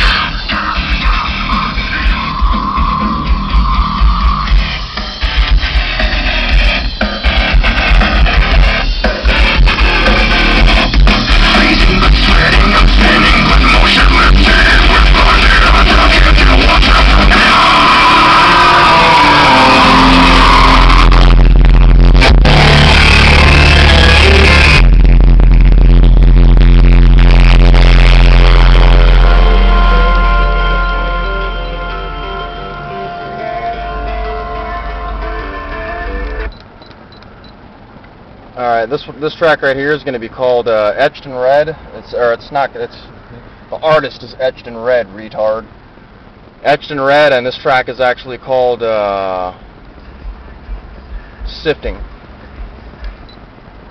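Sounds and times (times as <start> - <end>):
loud rock music: 0.0 - 36.6
deep bass notes: 0.0 - 36.7, 49.6 - 53.9.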